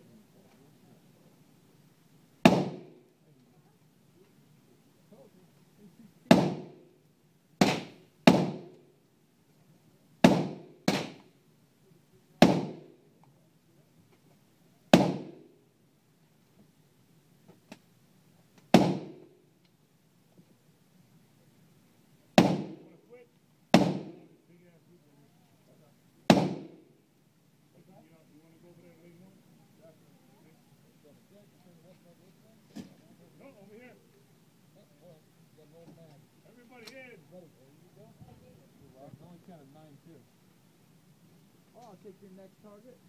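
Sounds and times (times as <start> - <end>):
rifle shot with reverberation: 2.4 - 3.0, 6.3 - 6.8, 7.6 - 8.7, 10.2 - 11.3, 12.4 - 13.0, 14.9 - 15.5, 18.7 - 19.3, 22.4 - 23.0, 23.7 - 24.3, 26.3 - 26.9.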